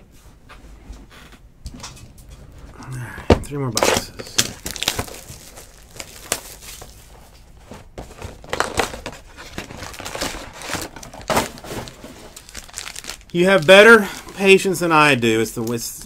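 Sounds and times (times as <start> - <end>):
wrapper crinkling and tearing: 3.7 - 7.1, 8.1 - 16.0.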